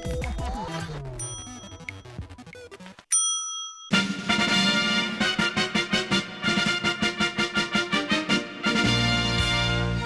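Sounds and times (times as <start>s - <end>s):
bright bell ding: 1.2s - 2.2s, 3.1s - 4.0s
quiet jingle music: 1.2s - 2.2s.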